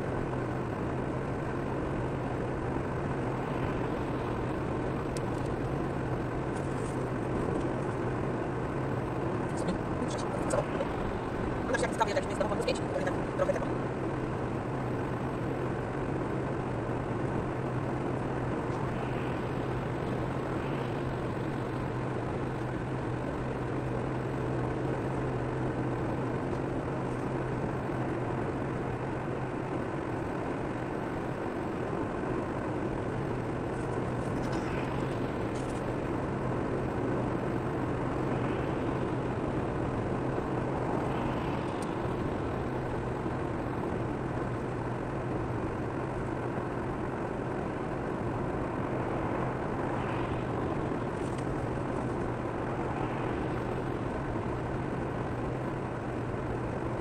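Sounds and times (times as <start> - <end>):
low engine drone: 0.0 - 57.0.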